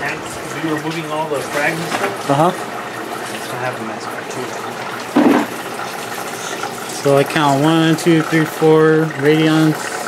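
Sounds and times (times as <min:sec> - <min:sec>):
aquarium water rushing: 0:00.0 - 0:10.0.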